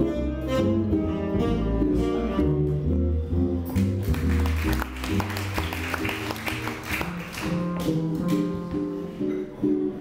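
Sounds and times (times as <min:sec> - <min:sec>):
jazz guitar: 0:00.0 - 0:10.0
plucked double bass: 0:00.0 - 0:10.0.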